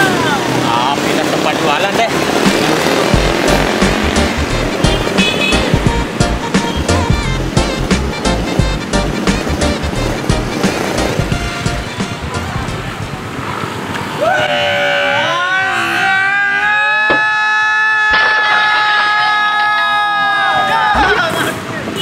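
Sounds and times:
background music with a beat: 2.3 - 13.0.

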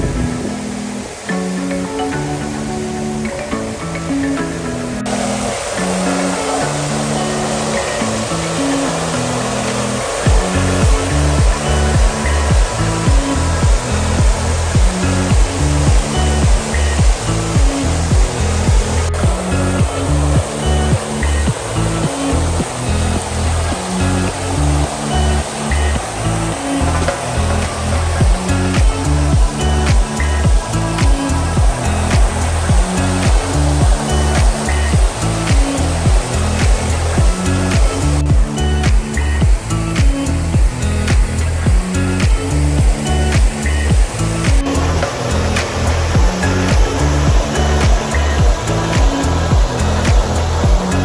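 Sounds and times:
fountain jets spraying into pool: 0.0 - 51.0
music with pulsing beat: 0.0 - 51.0.

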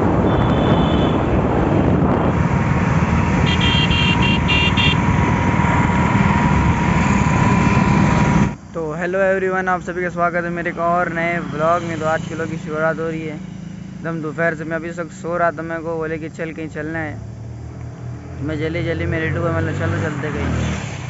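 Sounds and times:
wind rumbling on microphone: 0.0 - 8.7
motorcycle engine and road noise: 0.0 - 21.0
short high horn beeps: 3.4 - 5.0.

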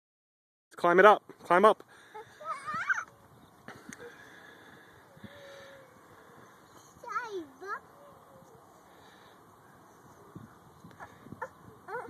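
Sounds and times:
toddler wordless vocal sounds: 11.0 - 12.0.

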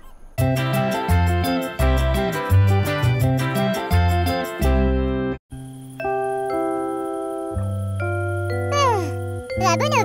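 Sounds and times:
soft cartoon background music: 5.9 - 10.0
high cartoon character voice: 8.7 - 10.0.

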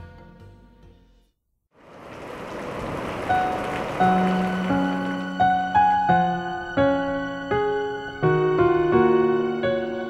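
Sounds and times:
wind and heavy rain: 1.8 - 9.2.

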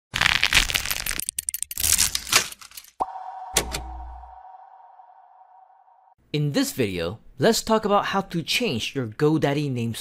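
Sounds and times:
rising rush of noise: 3.0 - 6.2.

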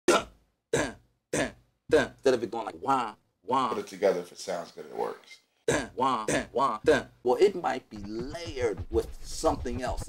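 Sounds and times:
chopped spoken voice sample: 0.1 - 4.2, 5.2 - 10.0.

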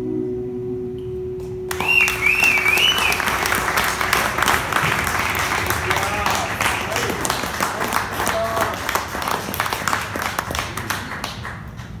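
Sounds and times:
audience applause: 1.7 - 12.0.

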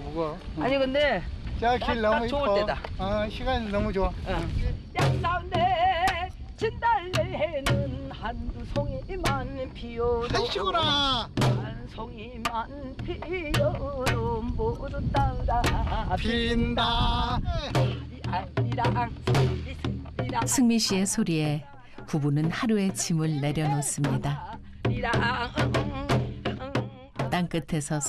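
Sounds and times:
barrel drum strokes: 4.3 - 8.1, 17.7 - 21.0
woman singing folk song: 4.9 - 10.6, 11.4 - 16.7, 17.9 - 28.0.

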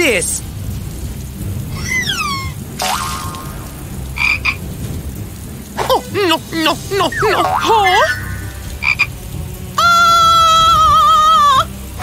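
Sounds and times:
steady rain: 0.0 - 12.0
cartoon frogs croaking: 2.8 - 4.6, 5.8 - 9.2.

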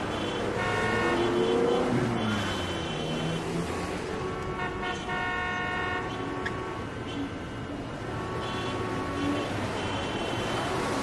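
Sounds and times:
vehicle horns honking: 0.0 - 10.9
street traffic noise: 0.0 - 11.0.

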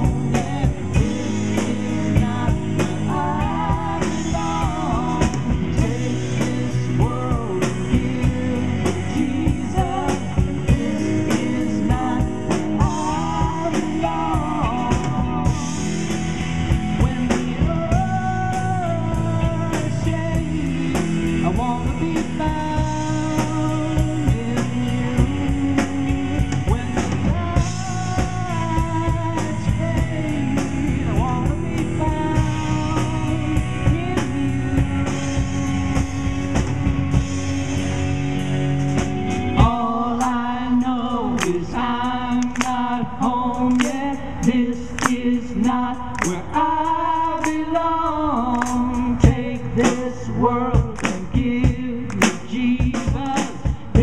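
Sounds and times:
person singing: 0.0 - 36.6, 39.5 - 54.0
bass guitar: 0.0 - 54.0
drum kit beat: 0.0 - 54.0.

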